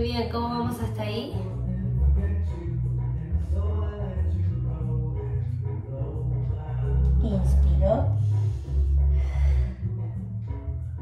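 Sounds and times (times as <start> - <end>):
background music with bass line: 0.0 - 11.0
person breathing: 8.2 - 10.0.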